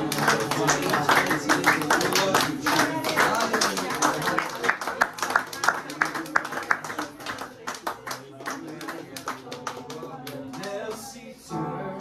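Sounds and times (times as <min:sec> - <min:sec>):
group hand clapping: 0:00.0 - 0:11.1
murmured voices: 0:00.0 - 0:12.0.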